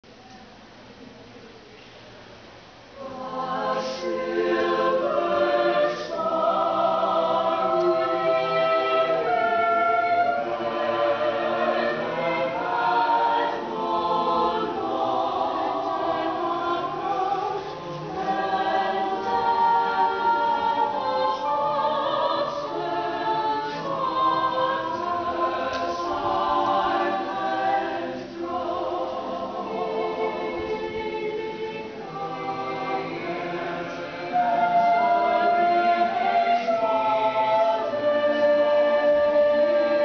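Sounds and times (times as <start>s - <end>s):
choir singing a cappella: 2.9s - 40.0s.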